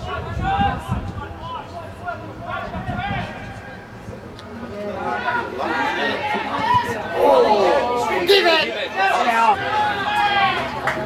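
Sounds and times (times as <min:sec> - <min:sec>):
people chatting: 0:00.0 - 0:11.0.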